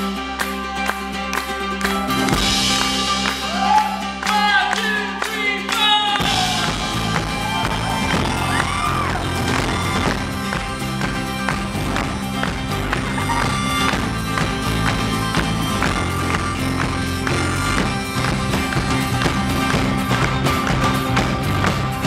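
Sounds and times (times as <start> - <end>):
mandolin strumming: 0.0 - 22.0
rock band playing live: 0.0 - 22.0.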